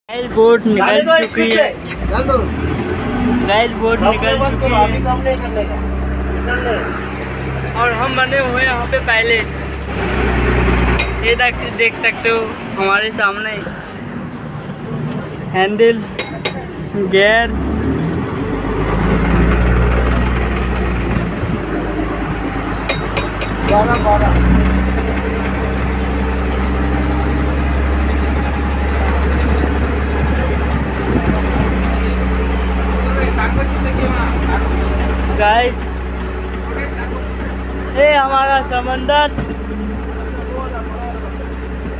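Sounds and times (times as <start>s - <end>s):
people's voices: 0.1s - 41.9s
boat engine droning: 0.2s - 41.9s.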